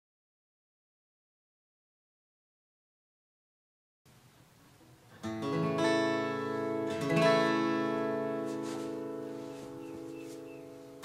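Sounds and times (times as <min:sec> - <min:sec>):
acoustic guitar strums: 0:04.8 - 0:11.0.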